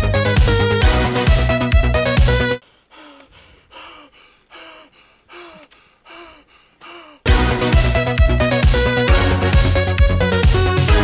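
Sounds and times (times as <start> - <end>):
man gasping: 2.6 - 7.3.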